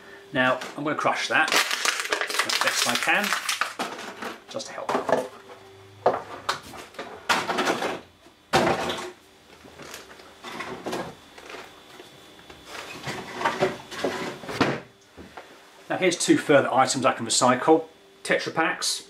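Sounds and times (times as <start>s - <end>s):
plastic container crackling: 1.4s - 3.9s.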